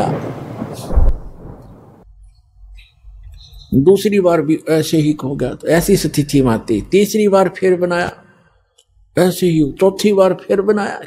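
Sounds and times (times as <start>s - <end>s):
deep thunder boom: 0.0s - 2.0s
storm rumble: 0.0s - 2.0s.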